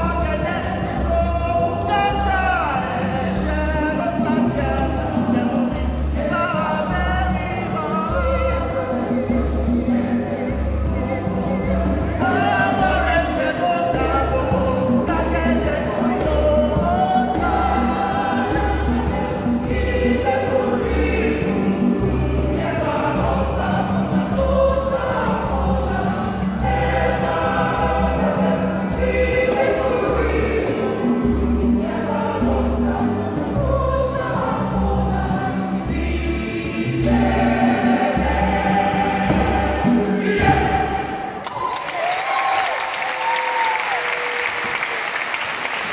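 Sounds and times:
choir singing in harmony: 0:00.0 - 0:41.5.

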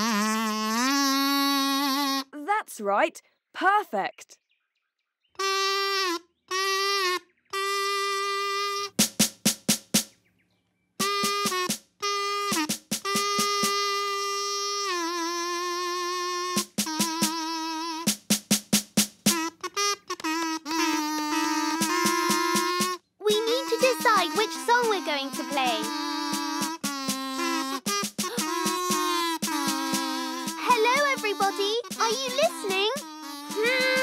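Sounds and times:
kazoo buzzing a tune: 0:00.0 - 0:02.4, 0:05.4 - 0:09.4, 0:11.0 - 0:34.0
second kazoo: 0:00.0 - 0:02.4, 0:05.4 - 0:09.4, 0:11.0 - 0:18.6, 0:19.2 - 0:34.0
drum beaten in quick runs: 0:08.9 - 0:10.2, 0:11.0 - 0:13.9, 0:16.5 - 0:19.7, 0:21.6 - 0:34.0.

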